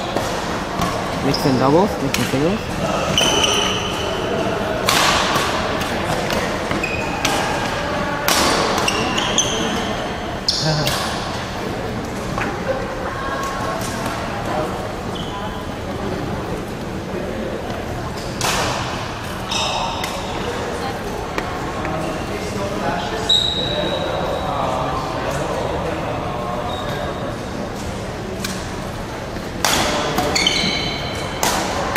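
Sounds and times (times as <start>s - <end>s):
murmur of voices: 0.0s - 31.9s
sneaker squeaks on floor: 0.8s - 4.4s, 6.6s - 7.4s, 8.7s - 11.0s, 15.1s - 15.7s, 19.4s - 20.5s, 23.2s - 24.5s, 30.2s - 31.4s.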